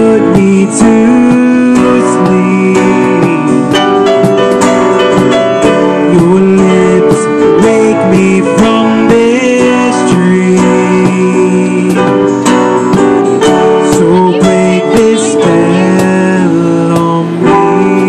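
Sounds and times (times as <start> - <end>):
digital stage piano: 0.0 - 18.0
strummed acoustic guitar: 0.0 - 18.0.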